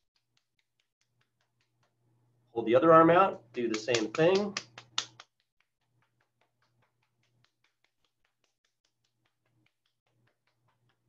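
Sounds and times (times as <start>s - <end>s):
hand patting a forearm: 0.0s - 2.1s, 3.4s - 11.0s.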